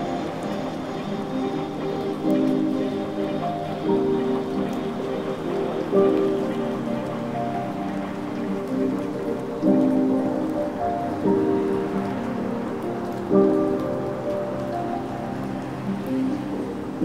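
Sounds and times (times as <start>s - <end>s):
chill electronic music: 0.0s - 17.0s
rain-like hiss with crackles: 0.0s - 17.0s.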